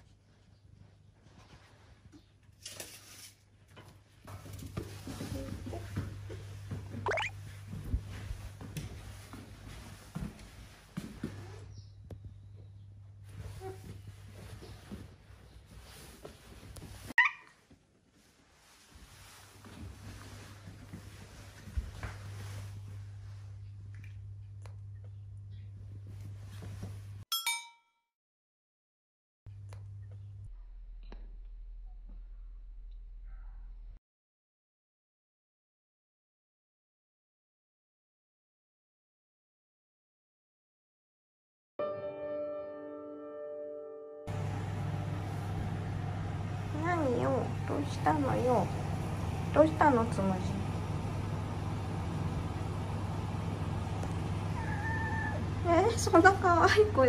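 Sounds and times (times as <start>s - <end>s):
low indoor background hum: 0.0s - 27.2s, 29.5s - 34.0s, 44.3s - 57.0s
woman speaking: 46.7s - 48.8s, 49.5s - 50.7s, 55.6s - 57.0s
cat meowing: 54.6s - 55.5s.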